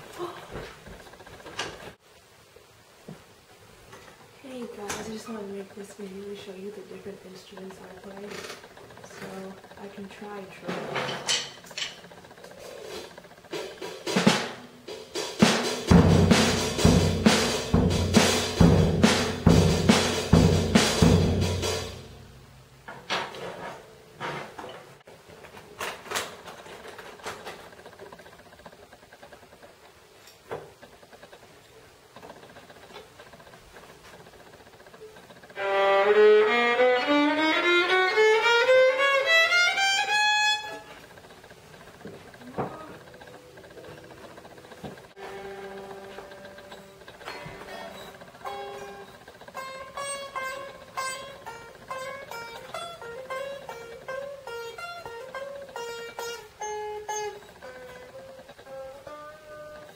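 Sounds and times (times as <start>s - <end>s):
drum kit with cymbals: 12.5s - 22.6s
violin bowing rising scale: 35.5s - 40.9s.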